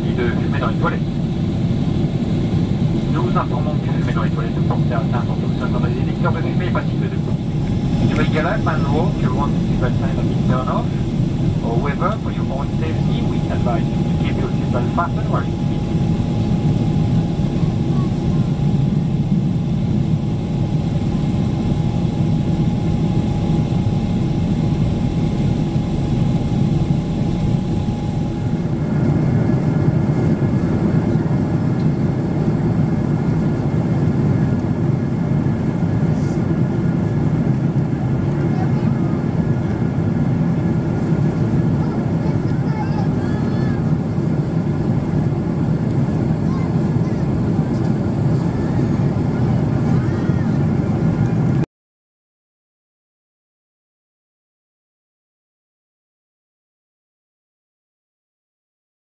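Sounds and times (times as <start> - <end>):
faint high hum: 0.0 - 34.6, 35.2 - 51.2
jet cabin engine and airflow rush: 0.0 - 51.7.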